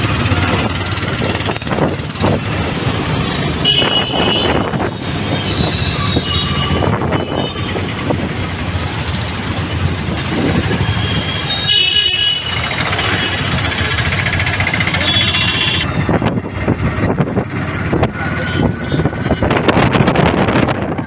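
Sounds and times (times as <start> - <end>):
auto-rickshaw engine running: 0.0 - 21.0
street traffic: 0.0 - 21.0.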